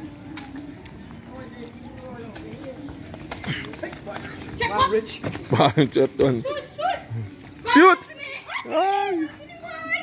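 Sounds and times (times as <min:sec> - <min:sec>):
feet running on dirt road: 0:00.1 - 0:10.0
children calling: 0:06.5 - 0:10.0.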